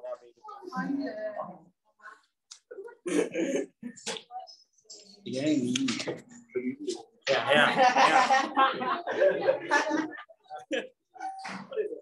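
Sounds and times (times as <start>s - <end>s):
person clearing throat: 3.0s - 4.0s.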